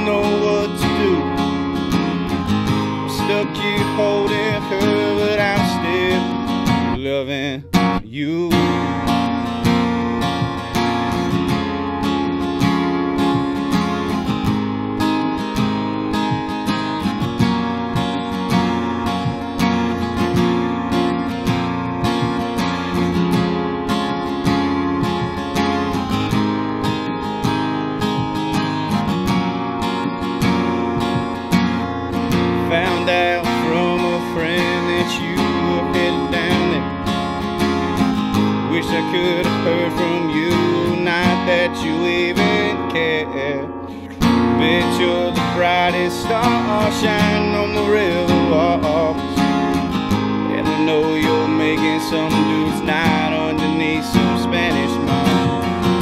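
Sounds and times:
acoustic guitar strumming: 0.0s - 56.0s
electronic keyboard chords: 0.0s - 56.0s.

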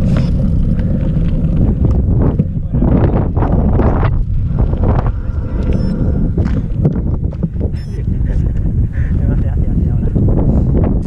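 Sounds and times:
bike tyres on gravel: 0.0s - 7.8s
wind rumbling on microphone: 0.0s - 11.0s.

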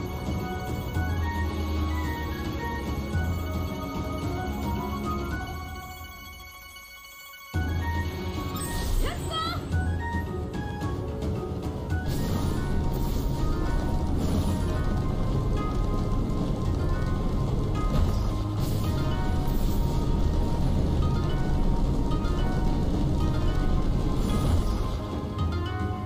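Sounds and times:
slot game background music: 0.0s - 26.0s.

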